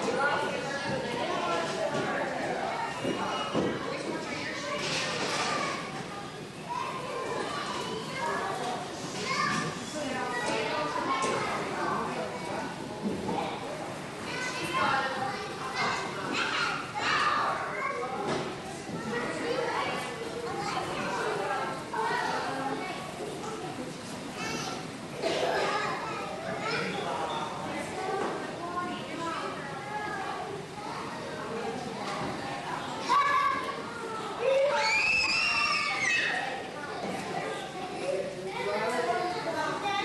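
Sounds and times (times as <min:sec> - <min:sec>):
children's voices playing: 0:00.0 - 0:40.0
children calling out: 0:33.0 - 0:40.0.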